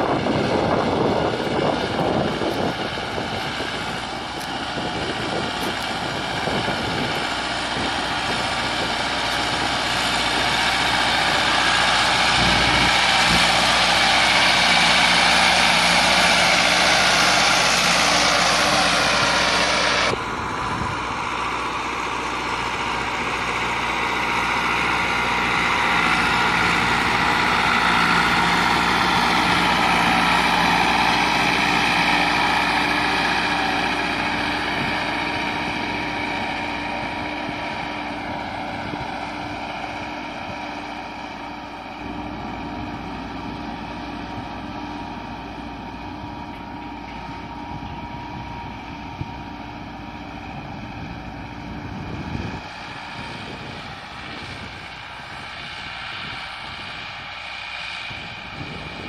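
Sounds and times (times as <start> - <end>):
tractor diesel engine under load: 0.0 - 59.0.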